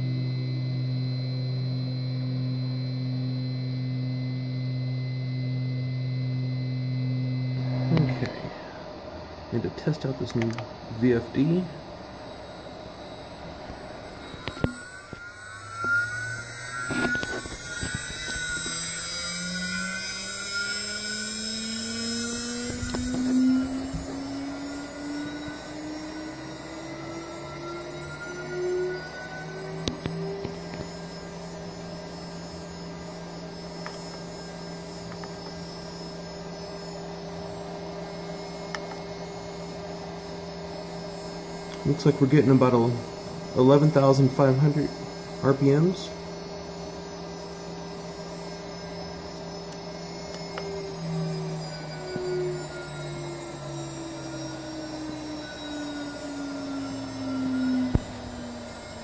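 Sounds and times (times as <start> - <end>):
router spindle whine: 0.0 - 59.0.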